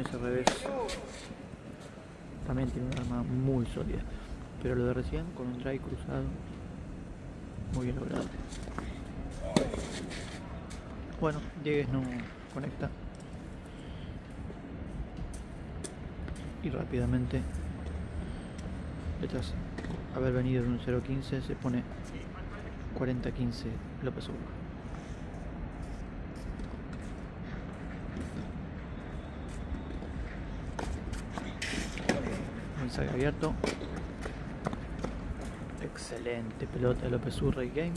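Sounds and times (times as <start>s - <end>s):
outdoor background hum: 0.0s - 37.9s
tennis racket hitting ball: 0.4s - 1.3s.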